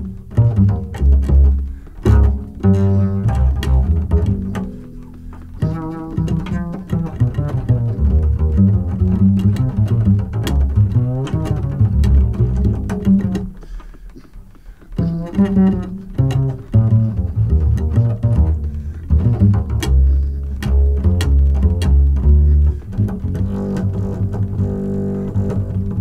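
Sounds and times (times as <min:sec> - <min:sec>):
plucked double bass: 0:00.0 - 0:26.0
jazz piano trio playing: 0:15.0 - 0:26.0.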